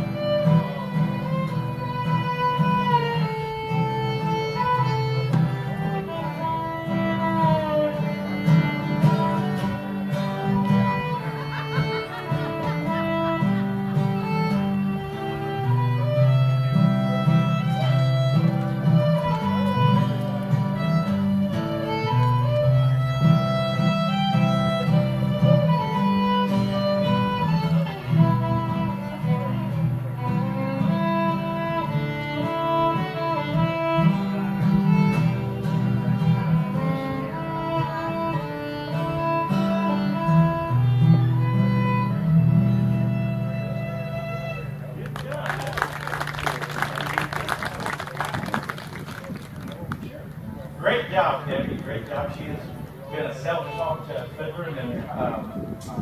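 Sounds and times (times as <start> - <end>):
acoustic guitar strumming: 0.0 - 45.2
fiddle melody: 0.0 - 56.0.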